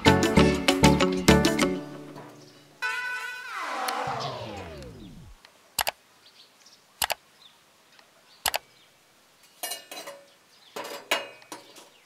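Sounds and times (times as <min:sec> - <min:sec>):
background music: 0:00.0 - 0:02.4
tone sliding down: 0:03.4 - 0:05.4
mouse clicks: 0:05.8 - 0:06.0, 0:07.0 - 0:07.2, 0:08.4 - 0:08.6.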